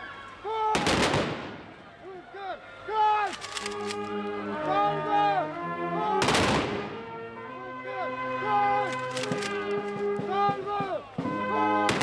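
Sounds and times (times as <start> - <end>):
rifle shot with echo: 0.8 - 1.6, 6.2 - 6.9.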